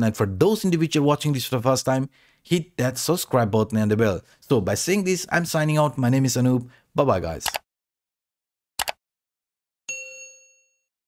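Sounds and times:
bright bell chime: 9.9s - 10.9s.

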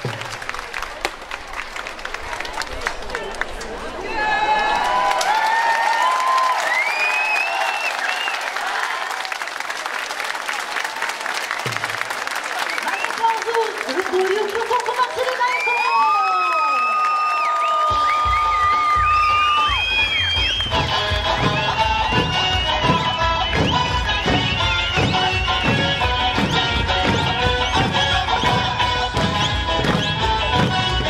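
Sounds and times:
audience applauding: 0.0s - 31.0s
high whistles and calls: 15.6s - 20.9s
heavy drum beats: 17.9s - 31.0s.

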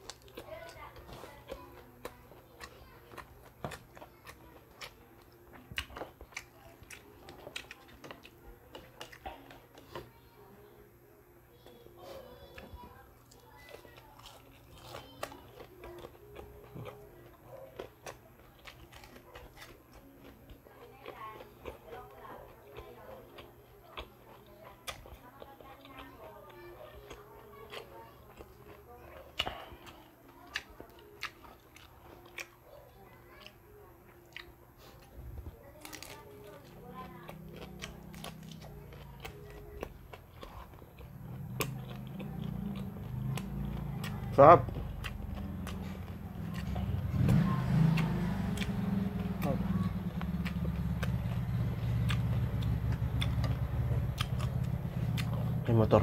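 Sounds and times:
chewing crispy fritters: 0.0s - 56.0s.

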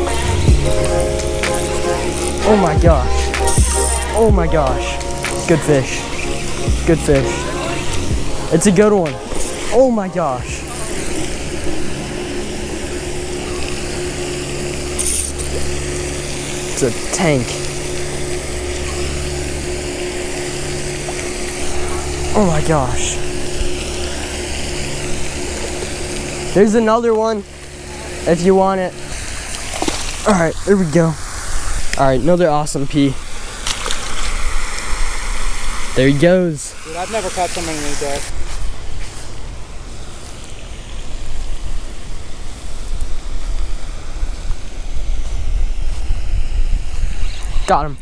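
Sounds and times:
fishing reel gears whirring: 0.0s - 32.4s
fish splashing into water: 29.4s - 30.3s
wind rumble on microphone: 38.3s - 48.0s.

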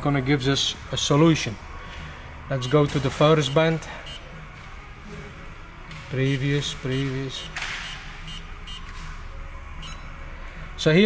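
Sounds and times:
low steady hum: 0.0s - 11.0s
short electronic key beeps: 9.8s - 10.1s.

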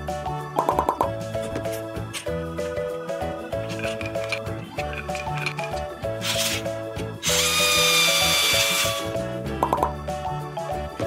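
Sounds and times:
light background music: 0.0s - 11.0s
power drill whine: 7.2s - 9.2s.

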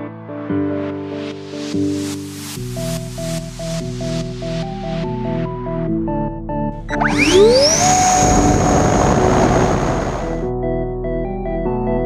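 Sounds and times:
electric ducted fan whine: 6.9s - 10.4s
loud rushing air: 7.0s - 10.5s.

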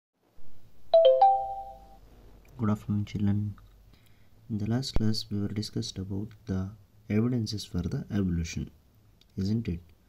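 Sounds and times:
three-note electronic chime: 1.0s - 2.0s.

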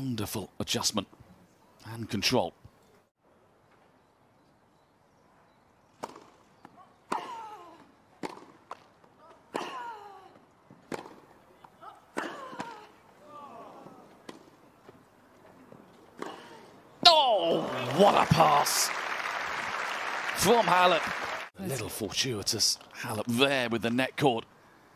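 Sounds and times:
tennis ball hit with rackets: 6.0s - 7.3s, 8.2s - 8.8s, 10.9s - 11.2s.

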